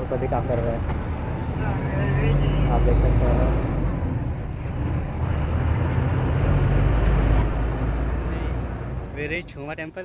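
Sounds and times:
bus engine and road noise: 0.0s - 10.0s.

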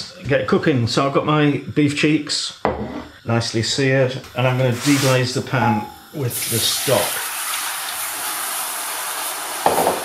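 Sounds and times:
stock sizzling in a hot pot: 0.2s - 10.0s.

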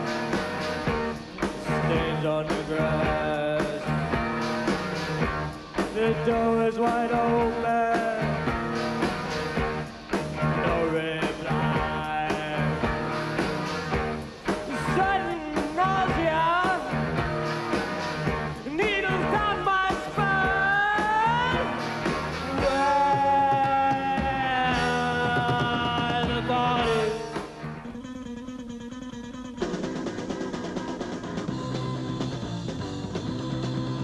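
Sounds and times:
rock music with singing: 0.0s - 28.4s, 29.5s - 34.0s.

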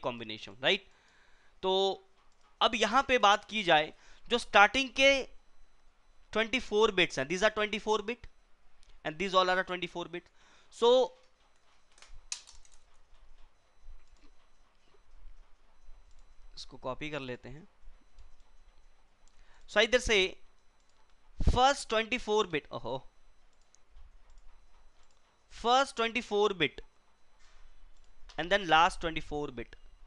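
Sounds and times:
computer mouse clicks: 2.2s - 2.6s, 11.2s - 14.6s, 23.5s - 25.3s, 27.9s - 28.4s
keyboard key clicks: 11.9s - 12.8s.

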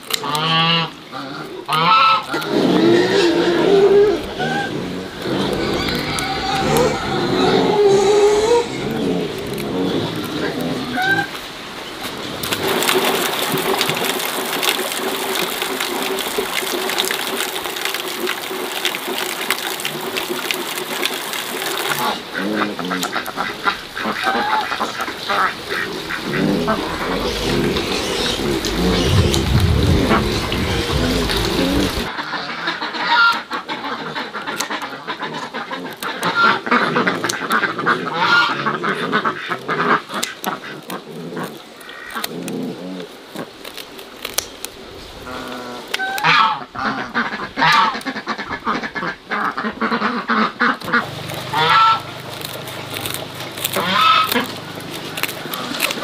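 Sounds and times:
geese and ducks calling: 0.1s - 11.5s, 21.7s - 42.4s, 45.3s - 56.0s.

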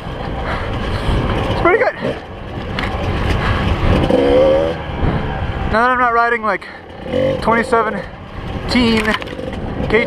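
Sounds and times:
dirt bike engine: 0.0s - 10.0s.

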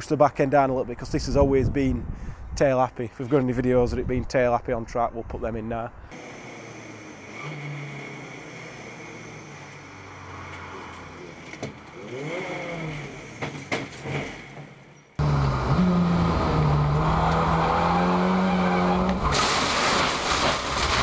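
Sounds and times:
diesel engine running: 6.2s - 13.6s, 15.2s - 19.6s.

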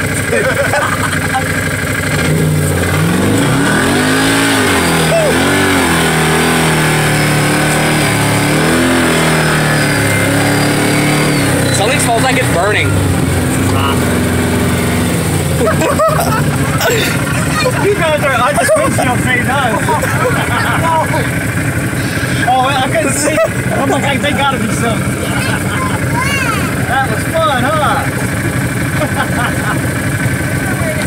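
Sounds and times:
vehicle engine running: 0.0s - 31.0s.

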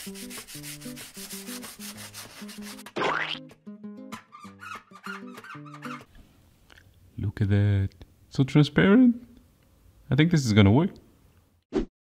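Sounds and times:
sandpaper rubbing: 0.0s - 2.9s
background music: 0.0s - 6.1s.

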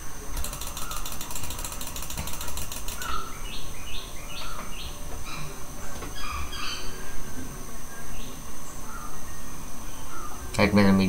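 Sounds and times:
mouse scroll wheel clicking: 0.4s - 3.2s
bird chirping: 0.4s - 10.6s.

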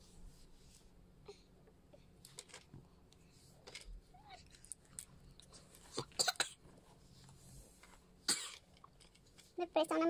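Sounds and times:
person coughing: 6.0s - 6.6s, 8.3s - 8.6s.

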